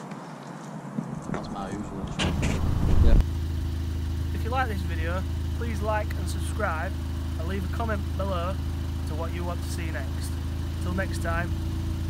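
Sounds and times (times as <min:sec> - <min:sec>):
loud low rumble: 0:01.4 - 0:03.3
car engine idling: 0:01.4 - 0:12.0.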